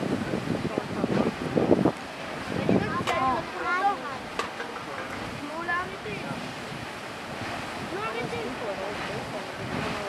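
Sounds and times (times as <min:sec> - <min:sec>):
geyser water and steam rushing: 0:00.0 - 0:10.0.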